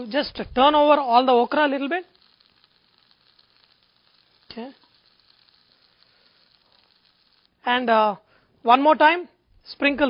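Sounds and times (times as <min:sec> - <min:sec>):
okra sizzling in oil: 0:00.0 - 0:08.4.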